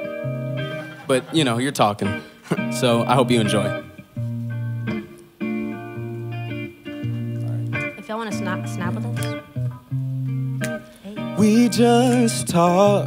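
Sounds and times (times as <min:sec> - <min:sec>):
bass guitar: 0:00.0 - 0:13.0
electric guitar chords: 0:00.0 - 0:13.0.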